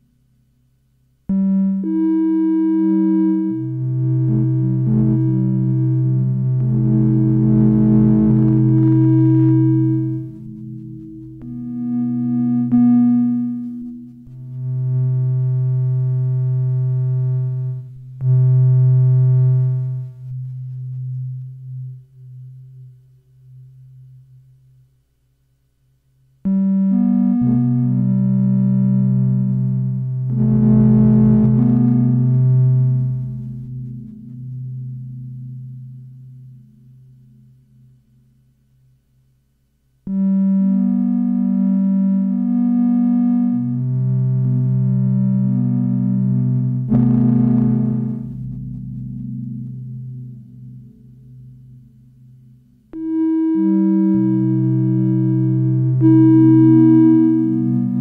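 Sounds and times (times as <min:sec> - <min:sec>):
buzzy synth tones: 0:01.3 - 0:24.2, 0:26.5 - 0:38.1, 0:40.1 - 0:58.0
low synth drone: 0:01.3 - 0:24.4, 0:26.5 - 0:38.3, 0:40.1 - 0:58.0.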